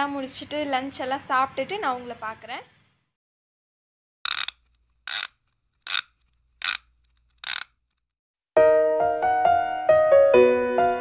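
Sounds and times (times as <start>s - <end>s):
piano music: 8.6s - 11.0s.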